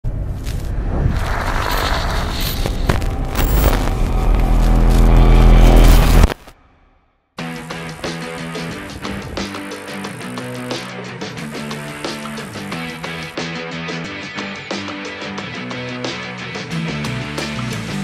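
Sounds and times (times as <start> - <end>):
build-up music with deep booms: 2.7 - 6.4
rock music with steady beat: 7.4 - 18.0.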